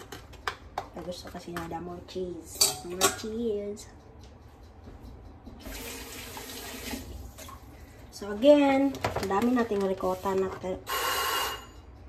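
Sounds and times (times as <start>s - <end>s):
kitchen tap running: 5.6s - 7.8s.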